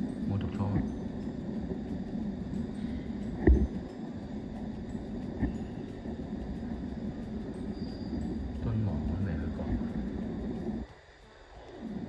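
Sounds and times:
low indoor rumble: 0.0s - 12.0s.

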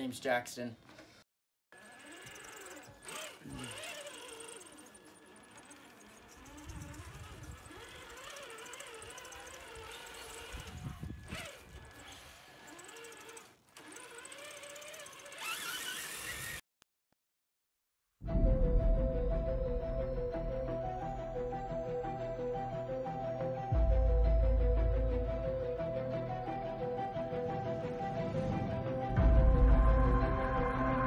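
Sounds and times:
electric motor whining: 1.8s - 16.6s
low rumbles: 18.3s - 22.2s.

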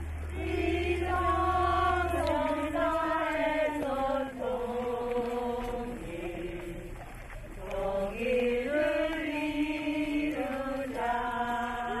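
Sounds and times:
voices chanting in unison: 0.0s - 12.0s.

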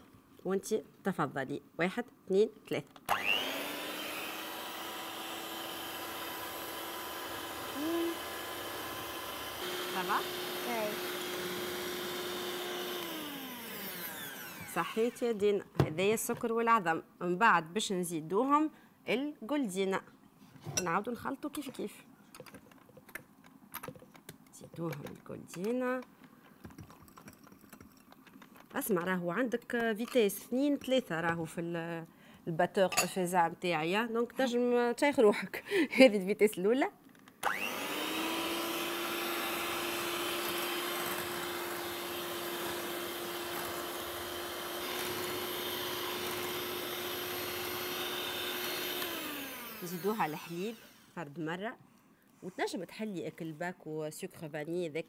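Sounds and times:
woman speaking: 0.4s - 2.9s, 7.8s - 8.2s, 9.9s - 11.7s, 14.7s - 20.1s, 20.7s - 22.1s, 24.6s - 26.1s, 28.7s - 37.0s, 49.8s - 51.8s, 52.4s - 55.0s
electric hand mixer whisking: 3.1s - 15.2s, 37.5s - 51.2s.

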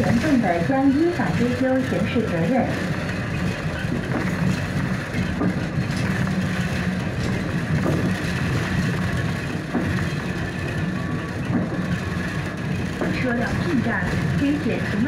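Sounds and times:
bus drivetrain hum: 0.0s - 15.0s
tyre and road noise: 0.0s - 15.0s.

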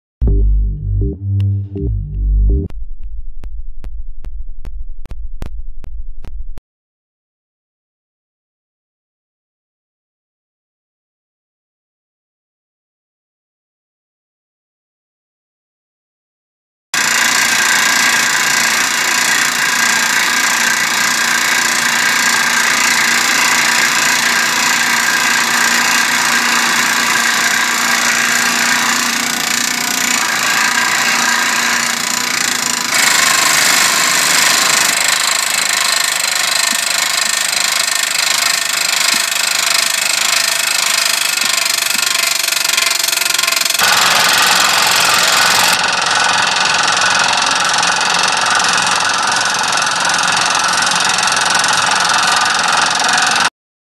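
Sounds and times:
hydraulic drill rig hammering: 17.0s - 53.5s.

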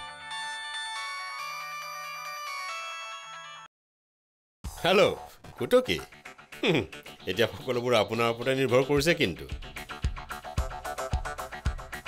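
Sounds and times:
melodic phone ringtone: 0.0s - 3.7s.

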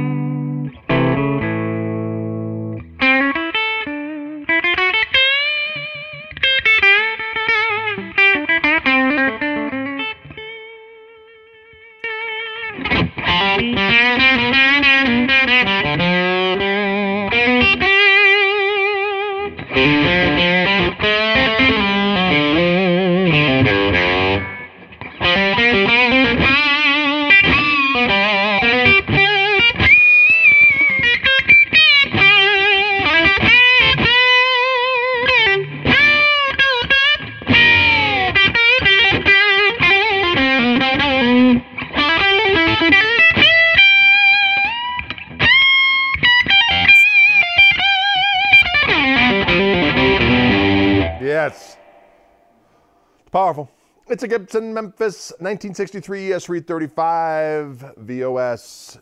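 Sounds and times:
electric guitar lead lines: 0.0s - 53.9s.

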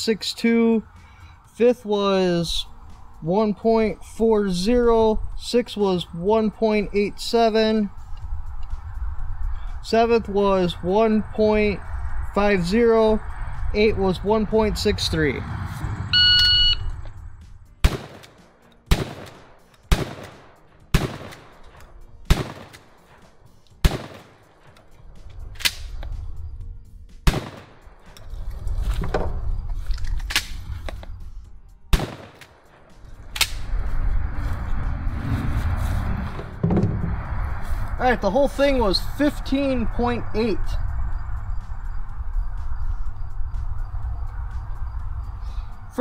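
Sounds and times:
shot timer beep: 16.2s - 17.0s
shotgun shots: 17.8s - 24.8s, 27.2s - 28.0s, 31.9s - 32.8s.

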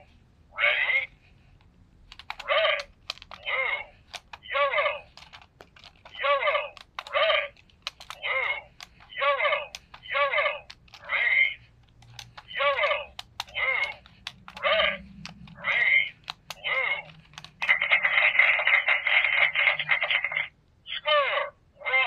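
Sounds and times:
toy electronic voice-like sound: 0.5s - 1.2s, 2.4s - 5.1s, 6.1s - 11.7s, 12.4s - 22.0s.

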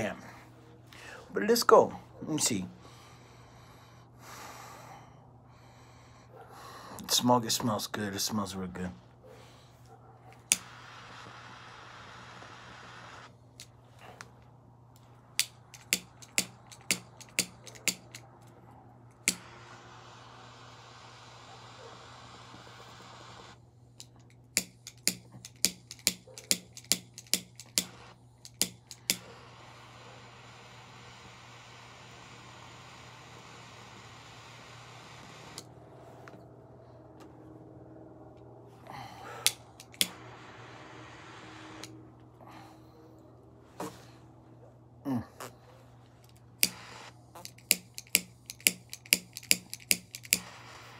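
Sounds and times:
cigar lighter clicking: 10.4s - 11.5s, 15.4s - 18.4s, 19.2s - 20.8s, 22.4s - 29.4s, 39.4s - 40.6s, 46.3s - 50.9s
steady hiss: 10.4s - 13.7s, 19.2s - 23.6s, 26.9s - 35.8s, 39.3s - 42.0s, 46.6s - 50.9s.

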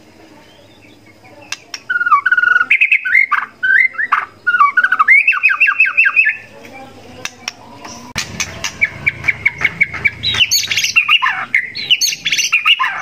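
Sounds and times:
bird singing whistled notes: 0.5s - 6.5s, 7.8s - 13.0s
sharp clicks: 1.5s - 1.9s.

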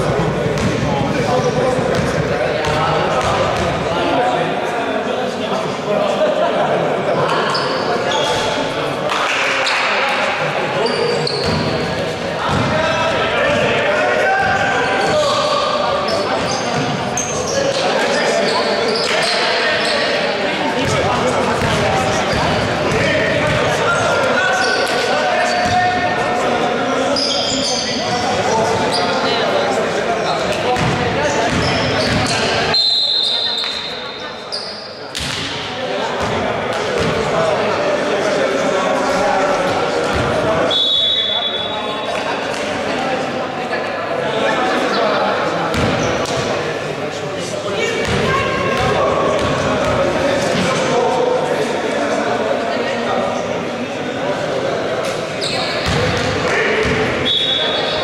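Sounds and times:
players shouting and talking: 0.0s - 58.0s.

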